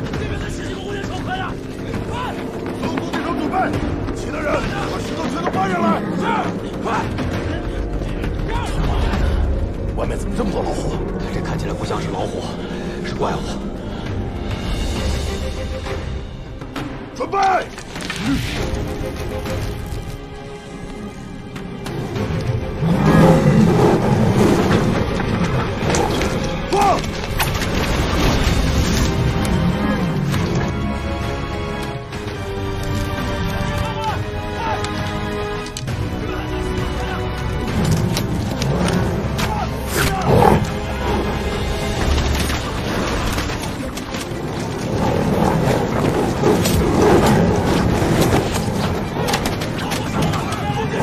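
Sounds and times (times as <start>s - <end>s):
dramatic music: 0.0s - 51.0s
tiger roaring and growling: 21.8s - 27.1s, 37.2s - 51.0s.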